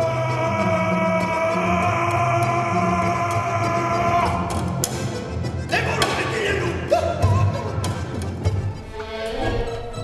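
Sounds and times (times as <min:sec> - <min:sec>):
man singing: 0:00.0 - 0:04.8, 0:05.7 - 0:07.8
button accordion: 0:03.0 - 0:10.0.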